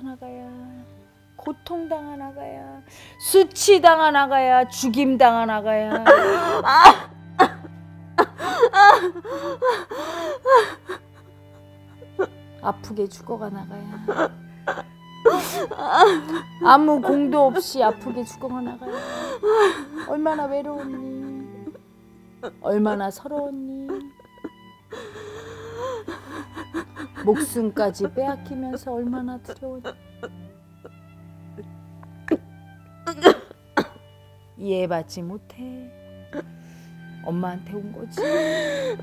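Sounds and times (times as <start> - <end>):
soft background music: 0.0 - 39.0
woman crying: 5.3 - 21.8, 22.4 - 31.0, 33.1 - 34.0, 38.0 - 39.0
woman sobbing: 5.5 - 12.4, 13.6 - 21.8, 22.4 - 31.0, 33.1 - 34.0, 38.0 - 39.0
gasping breath: 8.2 - 12.4, 18.9 - 20.1, 24.9 - 27.2, 38.2 - 39.0.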